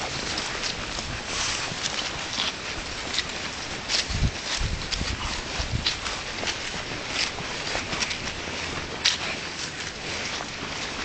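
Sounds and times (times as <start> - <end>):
footsteps on grass: 0.0 - 11.0.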